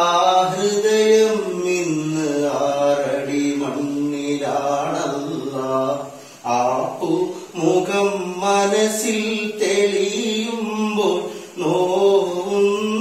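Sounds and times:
man singing unaccompanied: 0.0s - 13.0s.

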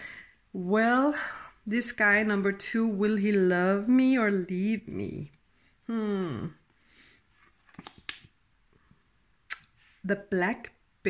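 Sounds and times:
soft card clicks: 7.6s - 8.3s.

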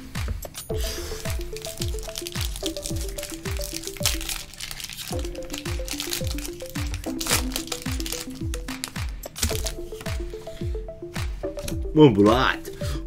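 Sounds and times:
background music with steady beat: 0.0s - 13.0s
foil wrapper crinkling and tearing: 1.0s - 9.8s.

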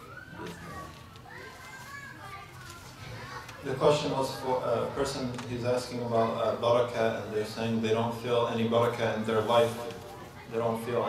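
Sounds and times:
faint children's voices calling: 0.0s - 11.0s.

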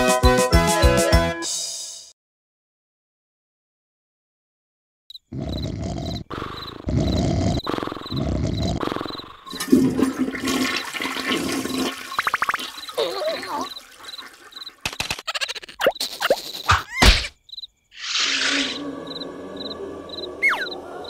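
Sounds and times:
crickets chirping: 5.1s - 9.7s, 10.7s - 21.0s
water gushing down a drain: 9.4s - 14.8s
cartoon character voice: 13.0s - 13.7s.

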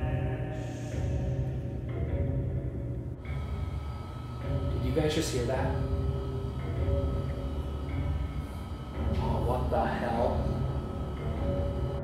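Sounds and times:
eerie drone music: 0.0s - 12.0s.

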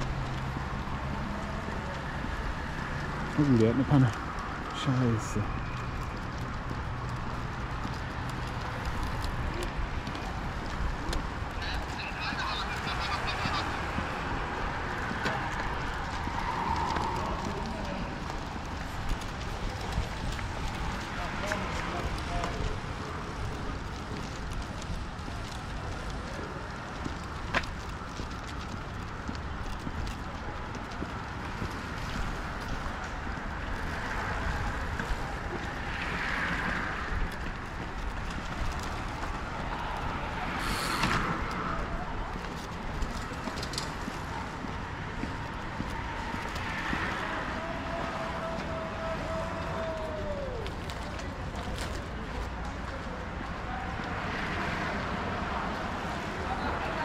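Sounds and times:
faint voices of passers-by: 0.0s - 57.0s
traffic rumble: 0.0s - 57.0s.

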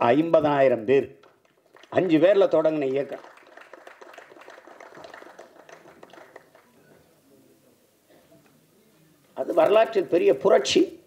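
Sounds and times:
man speaking into a microphone: 0.0s - 1.2s, 1.9s - 3.2s, 9.4s - 11.0s
faint audience clapping: 0.0s - 6.9s.

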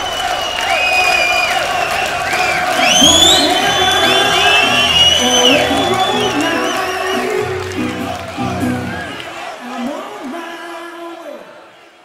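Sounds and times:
crowd cheering: 0.0s - 12.0s
metal band playing live: 3.6s - 9.2s.

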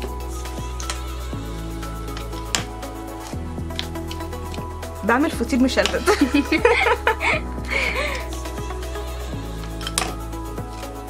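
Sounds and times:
music with held bass notes: 0.0s - 11.0s.

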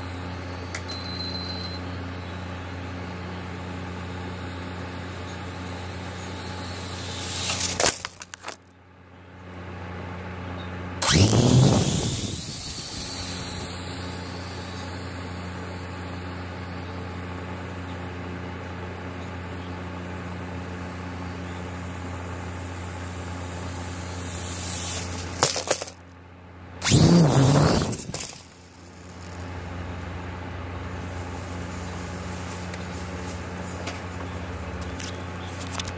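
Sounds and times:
quadcopter propellers buzzing: 5.4s - 8.5s, 11.0s - 16.1s, 22.2s - 26.0s, 26.8s - 29.4s.

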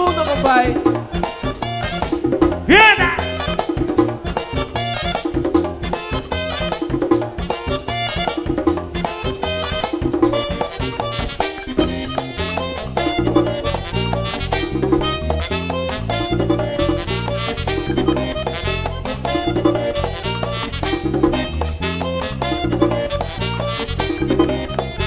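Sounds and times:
latin band playing dance music: 0.0s - 25.0s.

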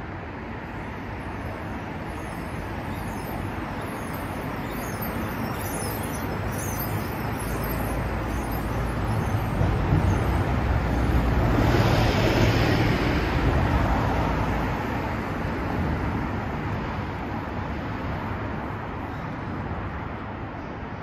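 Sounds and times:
bus passing: 0.0s - 21.0s
cars passing: 0.0s - 21.0s.

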